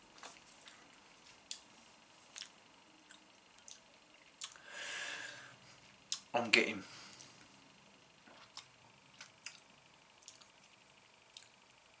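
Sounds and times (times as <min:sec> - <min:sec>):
soft breath: 0:04.6 - 0:05.9
lip and tongue smacks: 0:10.2 - 0:10.5.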